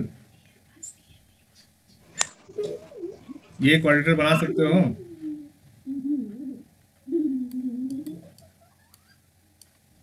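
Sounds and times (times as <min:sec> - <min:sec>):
pigeon cooing: 0:02.1 - 0:09.2.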